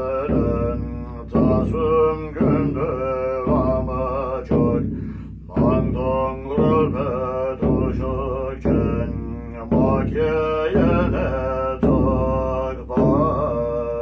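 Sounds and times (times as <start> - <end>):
frame drum beat: 0.0 - 14.0
man chanting: 0.0 - 14.0.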